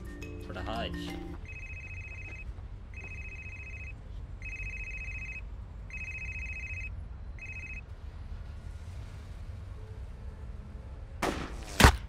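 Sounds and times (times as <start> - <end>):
mobile phone ringing: 1.0 - 7.8.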